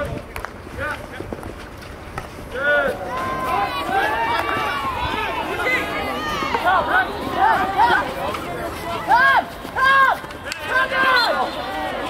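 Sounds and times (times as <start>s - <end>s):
players shouting and calling: 2.2s - 12.0s.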